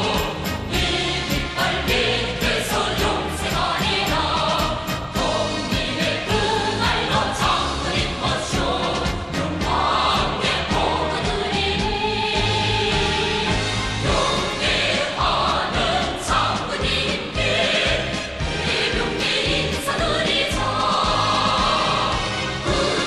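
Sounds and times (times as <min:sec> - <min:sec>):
choir singing military song: 0:00.0 - 0:23.0.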